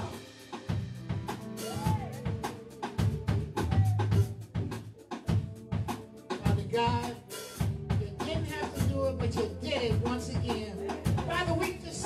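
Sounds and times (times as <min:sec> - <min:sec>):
drum kit beat: 0:00.0 - 0:12.0
upbeat band music: 0:00.0 - 0:12.0.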